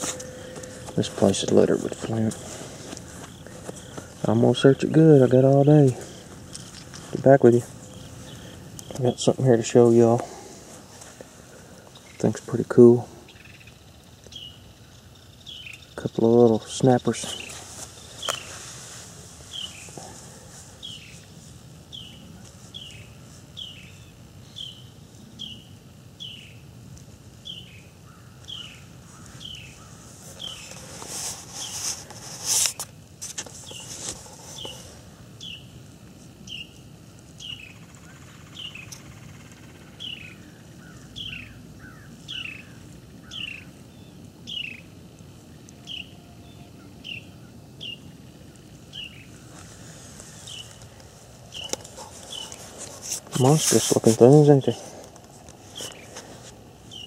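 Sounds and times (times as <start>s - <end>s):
bird chirping: 0.0s - 2.5s, 3.2s - 10.2s, 13.2s - 18.6s, 19.5s - 20.1s, 21.9s - 26.6s, 27.4s - 30.8s, 34.6s - 35.8s, 36.4s - 36.8s, 37.4s - 44.9s, 45.5s - 49.4s, 50.3s - 52.6s
faint outdoor ambience: 0.0s - 57.0s.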